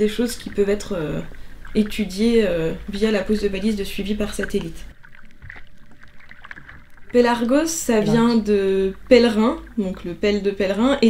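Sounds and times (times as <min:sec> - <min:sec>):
sea water splashing and lapping: 0:00.0 - 0:11.0.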